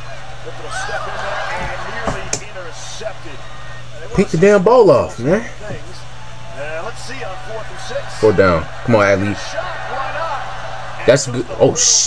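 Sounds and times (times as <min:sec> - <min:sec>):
sports announcer talking: 0:00.0 - 0:06.0, 0:06.6 - 0:12.0
background hum: 0:00.0 - 0:12.0.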